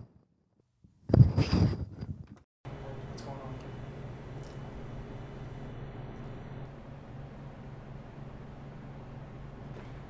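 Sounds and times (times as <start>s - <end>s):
steady low hum: 2.7s - 10.0s.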